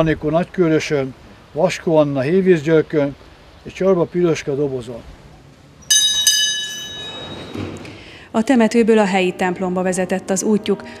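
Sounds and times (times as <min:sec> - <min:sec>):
small brass bell ringing: 0:05.8 - 0:07.6.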